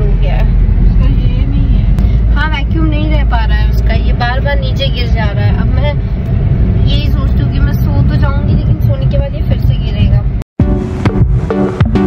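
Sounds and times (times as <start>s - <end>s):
car cabin road and engine rumble: 0.0s - 11.9s.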